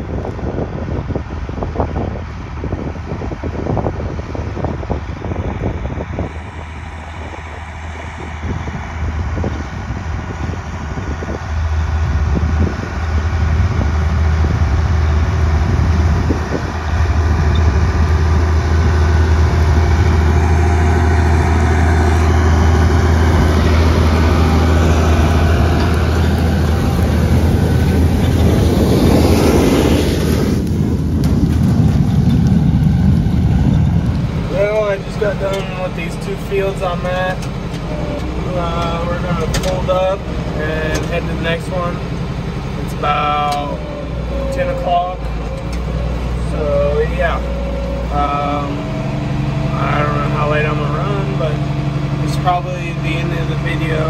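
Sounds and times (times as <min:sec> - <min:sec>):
rushing noise: 0:00.0 - 0:54.0
tractor engine running: 0:00.0 - 0:54.0
wind buffeting microphone: 0:00.0 - 0:54.0.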